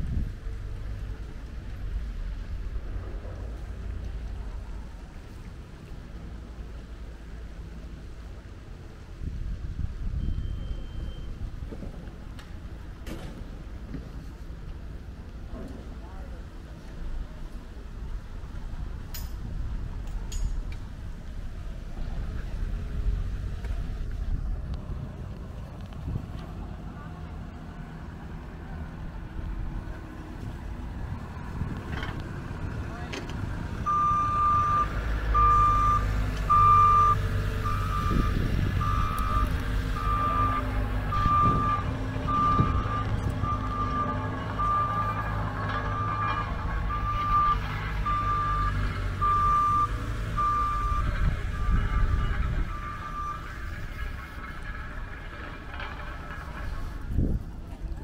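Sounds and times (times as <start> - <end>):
low engine rumble: 0.0 - 58.0
back-up alarm beeping: 10.2 - 11.4, 33.9 - 45.2, 45.9 - 53.6.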